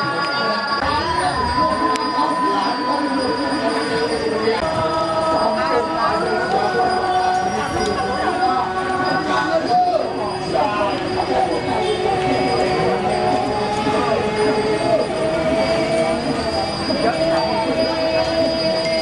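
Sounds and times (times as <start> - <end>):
murmur of a gathering: 0.0 - 19.0
voices singing held notes: 0.0 - 19.0.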